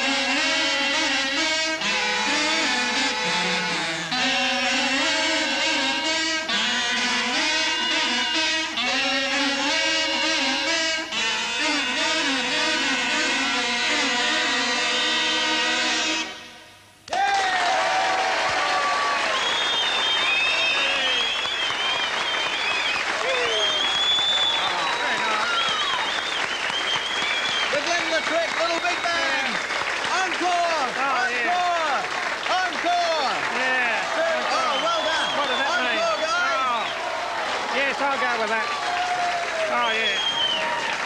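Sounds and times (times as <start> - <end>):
kazoo band chord: 0.0 - 17.1, 27.5 - 36.9
crowd cheering and whooping: 17.1 - 29.6, 32.5 - 41.0
audience applause: 17.1 - 41.0.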